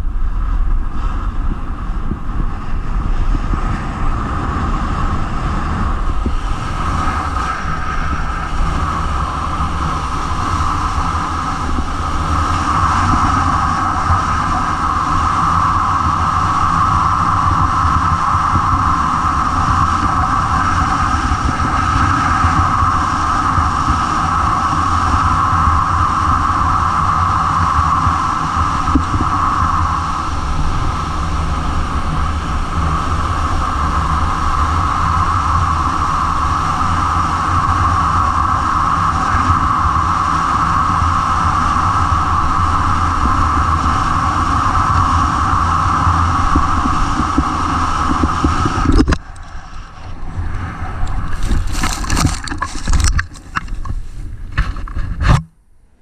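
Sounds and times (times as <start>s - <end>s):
snowboard on packed snow: 0.0s - 48.8s, 50.7s - 55.3s
wind on microphone: 0.0s - 56.0s.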